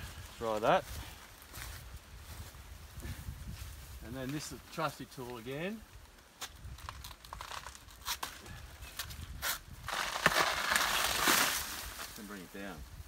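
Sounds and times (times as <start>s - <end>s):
stem snapping and crackling: 6.0s - 12.3s
banana leaves tearing and rustling: 6.0s - 12.5s.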